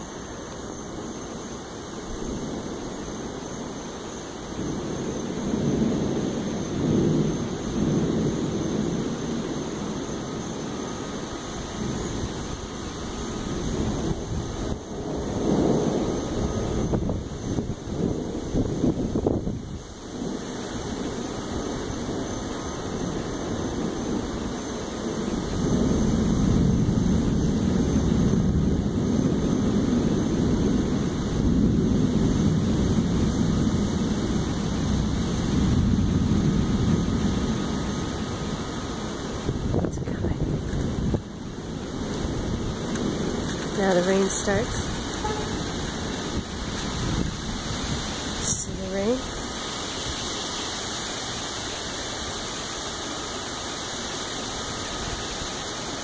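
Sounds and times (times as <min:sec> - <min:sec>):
gusting wind: 0:00.0 - 0:56.0
low rumble of thunder: 0:00.0 - 0:56.0.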